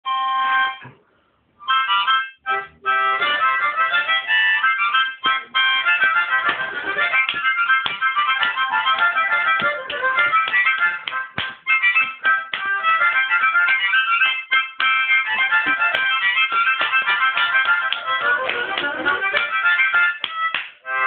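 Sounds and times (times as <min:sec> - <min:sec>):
solo harmonica: 0:00.1 - 0:01.0, 0:01.6 - 0:21.0.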